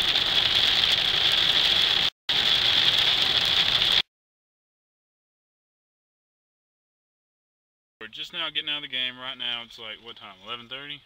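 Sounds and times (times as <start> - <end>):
heavy rain on vehicle roof: 0.0 - 4.0.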